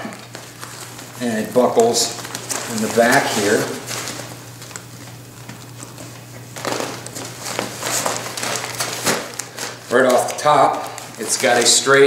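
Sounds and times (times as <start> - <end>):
fabric rustling: 0.3 - 11.8.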